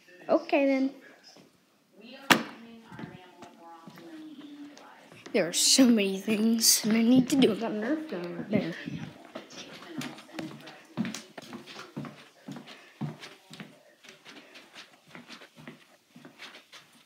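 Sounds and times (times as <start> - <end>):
footsteps on wooden floor: 2.3 - 17.0.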